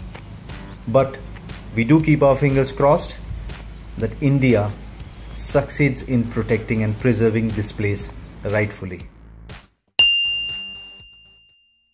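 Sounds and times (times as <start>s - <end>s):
bell-like chime ding: 10.0s - 11.9s.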